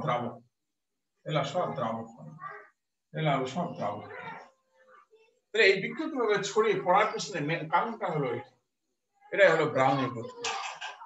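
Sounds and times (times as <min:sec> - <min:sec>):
man speaking: 0:00.0 - 0:00.4, 0:01.3 - 0:02.3, 0:03.2 - 0:04.4, 0:05.6 - 0:08.5, 0:09.3 - 0:10.7.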